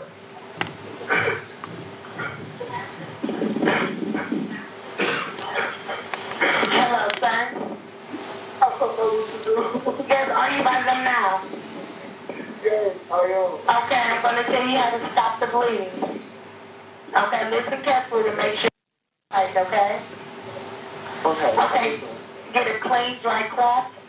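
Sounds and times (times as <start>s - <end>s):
indistinct voices on phone call: 2.1s - 7.8s, 8.6s - 16.2s, 17.1s - 20.0s, 21.2s - 23.9s.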